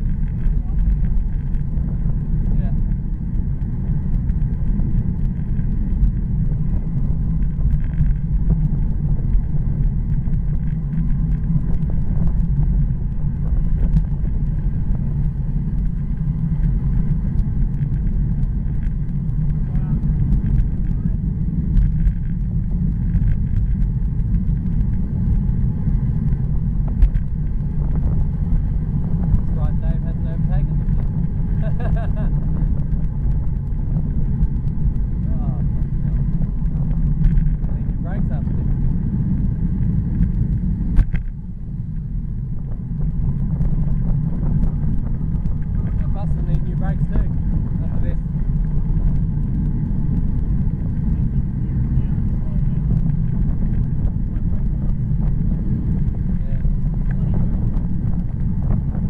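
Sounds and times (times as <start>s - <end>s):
wind rushing over microphone: 0.0s - 59.0s.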